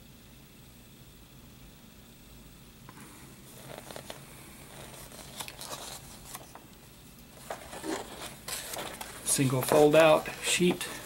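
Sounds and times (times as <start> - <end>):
paper rustling and crinkling: 3.5 - 6.7, 7.3 - 11.0.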